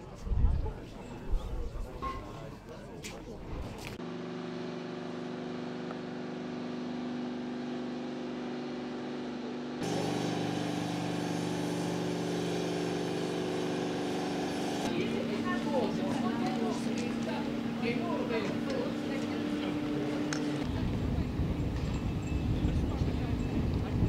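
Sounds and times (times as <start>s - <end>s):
machinery mechanical hum: 0.0s - 24.0s
faint voices: 14.9s - 24.0s.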